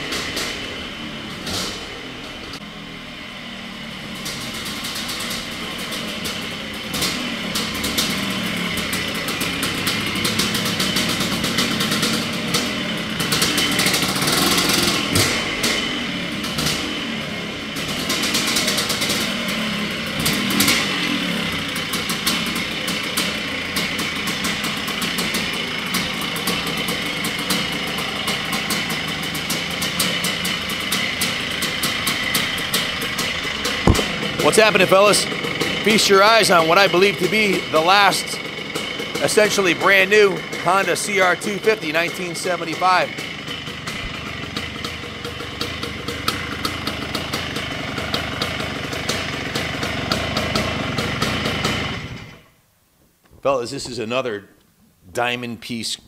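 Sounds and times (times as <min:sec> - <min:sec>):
motorcycle engine revving: 0:00.0 - 0:52.5.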